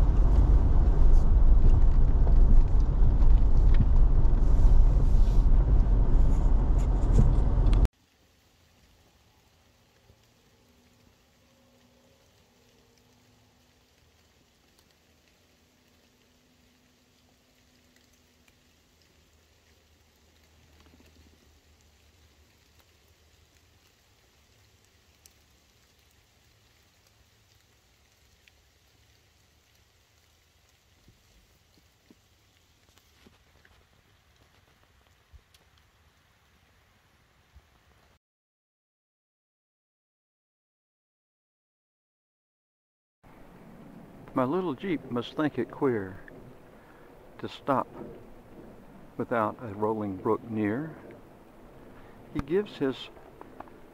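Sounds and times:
vehicle engine and tyre noise: 0.0 - 7.9, 43.3 - 53.9
faint ticks: 9.8 - 35.9.

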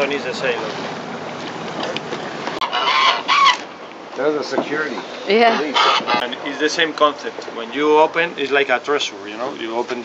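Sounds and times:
wind and water hiss: 0.0 - 10.0
geese honking: 2.6 - 3.6, 5.3 - 6.2.

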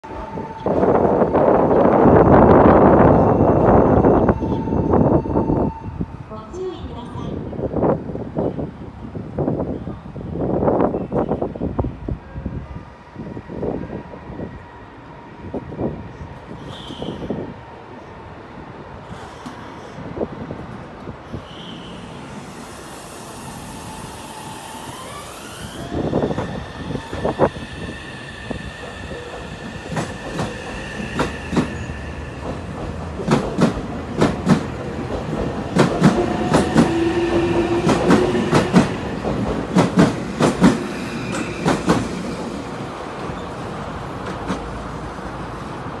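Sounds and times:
train wheels clacking over rail joints: 32.4 - 42.0.

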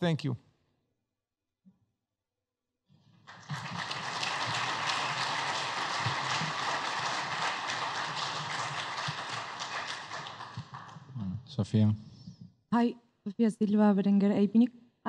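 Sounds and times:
audience applauding: 3.1 - 11.2.

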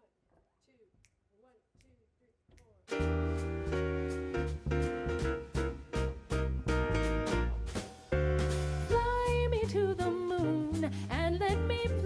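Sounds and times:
band playing: 2.9 - 9.9.

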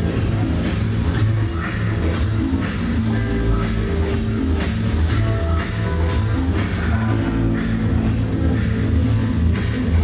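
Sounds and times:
loud dance music with heavy bass: 0.0 - 10.0.

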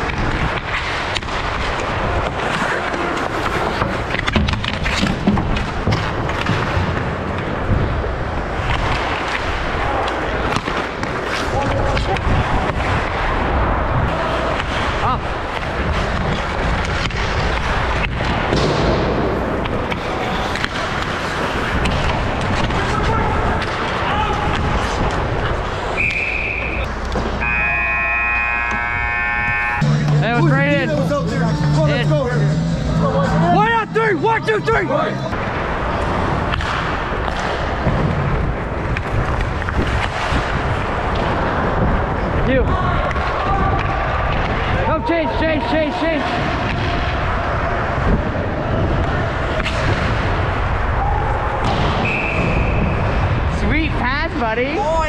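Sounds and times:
sticks and puck clacking: 0.0 - 27.6, 33.6 - 50.9
skate blades scraping ice: 0.1 - 7.6, 19.2 - 24.0
people shouting: 22.7 - 24.9, 26.0 - 32.1, 50.8 - 52.1
steady tone: 26.0 - 34.6
brief high tone: 27.4 - 29.8.

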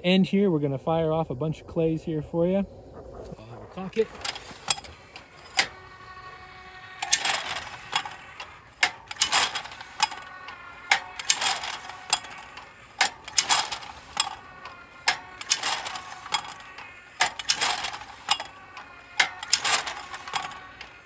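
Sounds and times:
motor and gears whirring rattle: 3.6 - 21.0.

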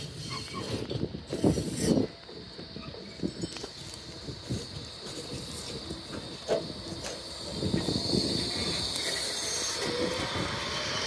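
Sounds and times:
high hiss of tram: 0.0 - 11.0
tram rumbling with knocks: 0.0 - 11.0.

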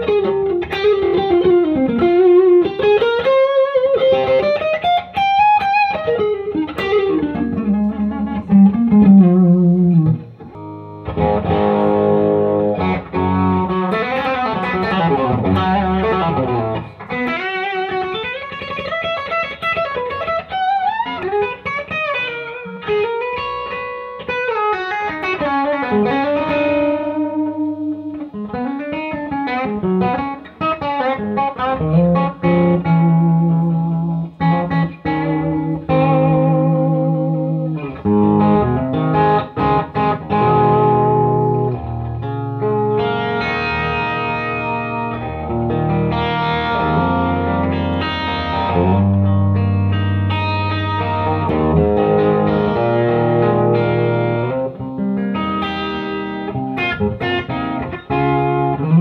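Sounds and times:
electric guitar chords: 0.0 - 59.0
electric guitar lead lines: 0.0 - 59.0.

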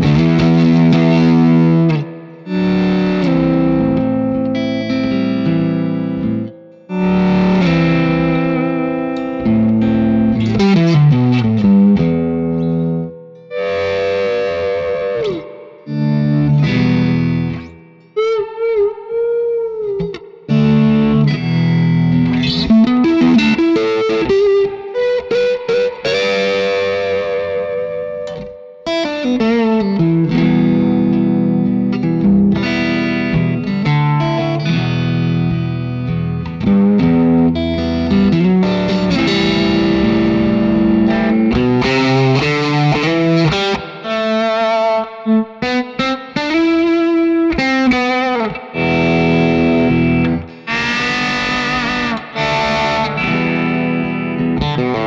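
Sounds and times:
electric guitar chords and notes: 0.0 - 55.0.

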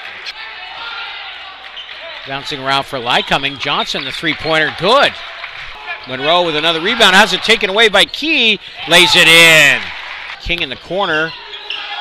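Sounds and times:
hum of crowd and court noise: 0.0 - 12.0.

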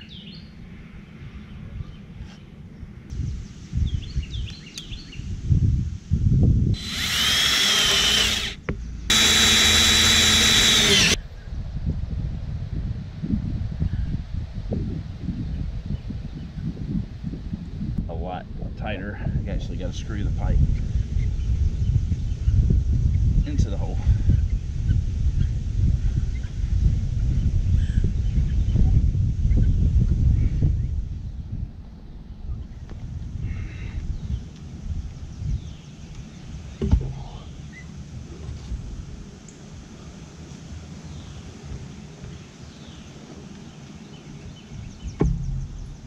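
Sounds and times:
low rumbling noise: 5.2 - 15.8, 44.4 - 46.0
sharp knock: 45.2 - 46.0.

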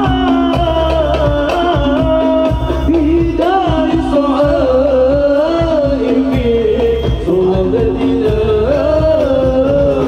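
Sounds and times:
drum rhythm: 0.0 - 10.0.

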